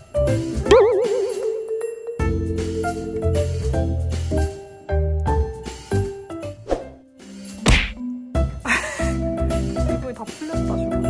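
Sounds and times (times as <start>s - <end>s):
background music: 0.0s - 11.0s
sharp whack: 7.6s - 8.0s.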